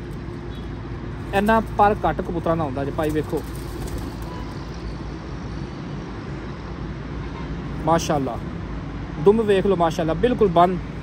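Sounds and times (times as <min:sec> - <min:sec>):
distant city traffic hum: 0:00.0 - 0:11.0.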